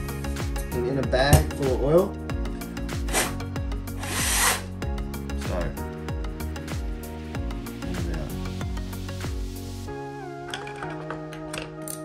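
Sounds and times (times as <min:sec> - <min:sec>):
aerosol spray hiss: 0:03.0 - 0:03.4, 0:04.0 - 0:04.7.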